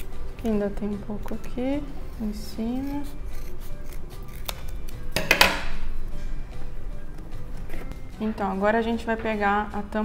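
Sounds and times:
quiet background music: 0:00.0 - 0:10.0
scissors cutting cardboard: 0:02.6 - 0:04.8.

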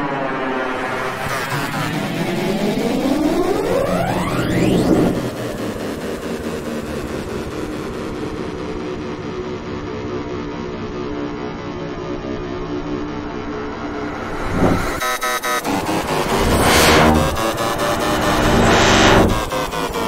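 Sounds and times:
steady tonal drone: 0:00.0 - 0:20.0
short rising sweep: 0:02.2 - 0:06.0, 0:12.9 - 0:20.0.

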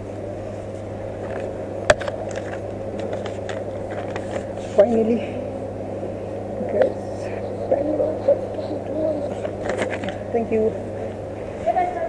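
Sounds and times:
shop background hum and murmur: 0:00.0 - 0:12.0.

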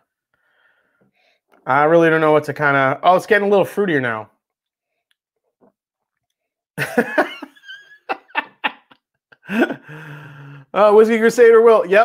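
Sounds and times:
man laughing breathily: 0:06.8 - 0:10.6.

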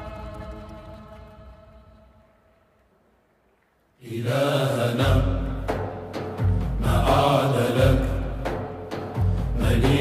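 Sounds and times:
men's voices chanting: 0:04.0 - 0:05.8, 0:06.7 - 0:08.6, 0:09.4 - 0:10.0.

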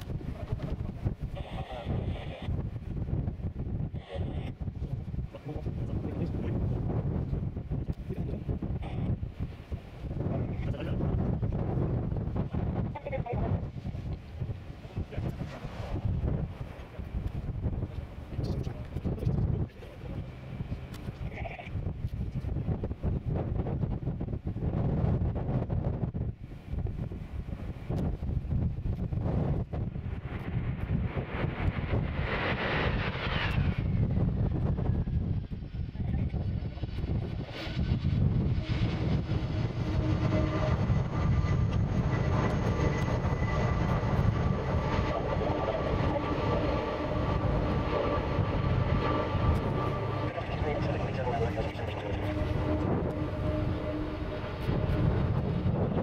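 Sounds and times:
jet engines whining and rumbling: 0:00.0 - 0:56.0
wind buffeting microphone: 0:00.0 - 0:56.0.

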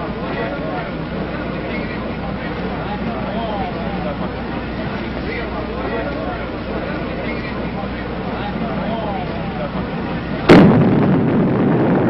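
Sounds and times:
heavy explosion rumble: 0:10.1 - 0:12.0
sharp explosion crack: 0:10.5 - 0:12.0.

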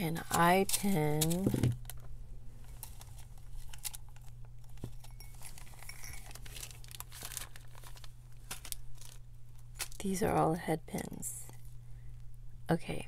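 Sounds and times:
plastic packet crinkling: 0:00.1 - 0:10.1.

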